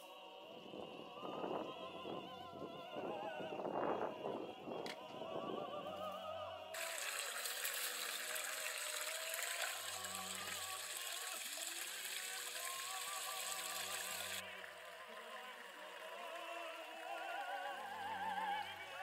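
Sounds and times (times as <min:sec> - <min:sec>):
background music with singing: 0:00.0 - 0:19.0
stream water splashing: 0:06.8 - 0:18.4.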